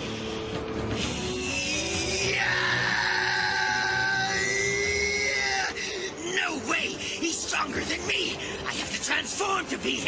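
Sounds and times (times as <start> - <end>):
dramatic background music: 0.0 - 10.0
man screaming angrily: 1.4 - 6.6.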